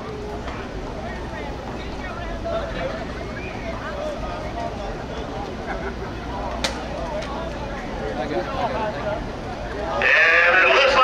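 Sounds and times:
people's voices: 0.0 - 11.0.

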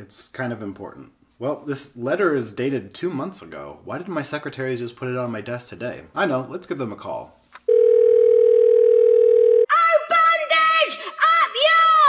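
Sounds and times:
telephone ringback tone: 7.7 - 9.7
child's high-pitched voice: 9.7 - 12.0.

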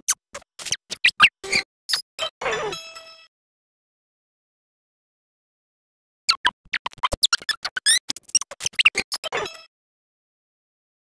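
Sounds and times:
sped-up squeaky chirps and blips: 0.0 - 2.1, 6.3 - 9.7.

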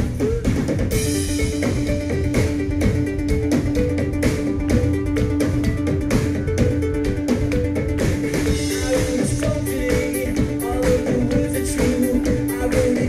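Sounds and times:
rock band instrumental: 0.0 - 13.0.

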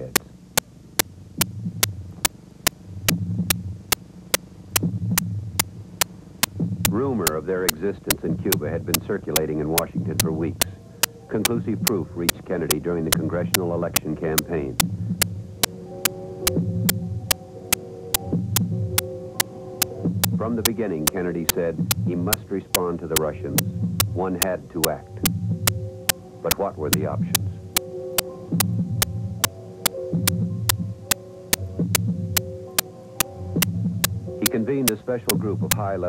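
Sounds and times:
sharp ticking: 0.0 - 19.1, 19.8 - 35.9
low throbbing hum: 1.0 - 4.0, 4.6 - 17.6, 18.2 - 34.5
low heartbeat-like throb: 3.0 - 3.9, 4.8 - 5.7, 6.5 - 7.2, 23.5 - 24.2, 25.2 - 25.9.

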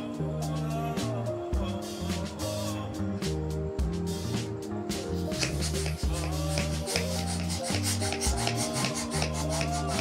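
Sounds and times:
background music with bass line: 0.0 - 10.0
hand pump inflating balloon: 5.2 - 10.0.

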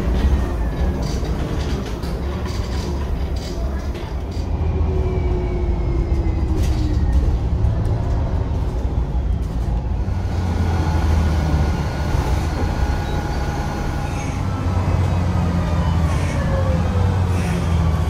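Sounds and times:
bus engine and road rumble: 0.0 - 18.0.

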